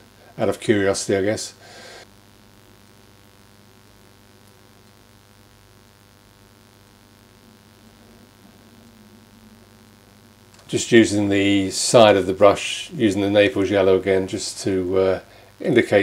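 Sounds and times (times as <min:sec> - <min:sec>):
faint electrical hum: 0:00.0 - 0:16.0.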